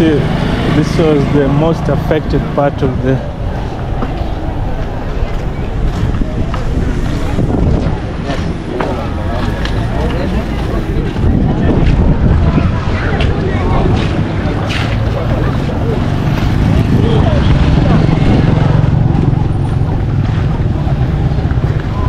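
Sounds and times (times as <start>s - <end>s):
indistinct voices: 0.0s - 22.0s
street noise: 0.0s - 22.0s
wind rumbling on microphone: 0.0s - 22.0s.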